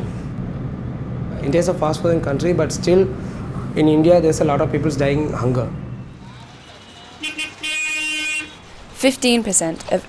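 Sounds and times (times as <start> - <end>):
traffic rumble: 0.0 - 10.0
vehicle horn honking: 5.9 - 8.8.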